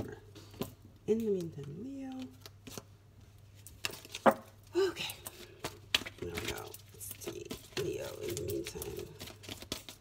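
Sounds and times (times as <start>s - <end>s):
cards being shuffled: 2.1s - 3.0s, 3.6s - 10.0s.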